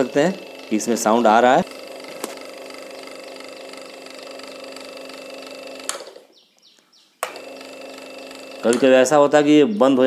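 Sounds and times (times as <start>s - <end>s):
fan motor humming: 0.0s - 10.0s.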